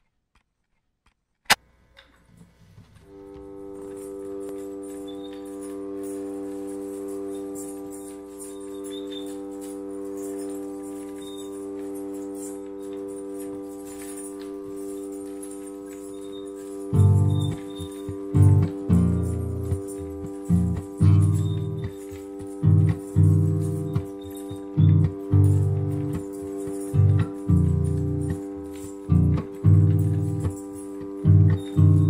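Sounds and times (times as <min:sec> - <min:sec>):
hurdy-gurdy drone: 0:03.1 - 0:32.0.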